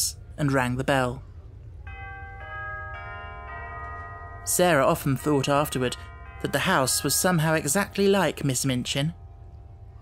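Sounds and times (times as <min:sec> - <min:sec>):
doorbell chimes: 0:01.9 - 0:10.0.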